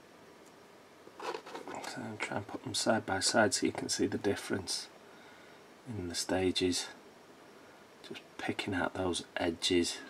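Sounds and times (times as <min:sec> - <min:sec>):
man speaking: 0:01.7 - 0:04.9, 0:05.9 - 0:07.0, 0:08.1 - 0:10.0.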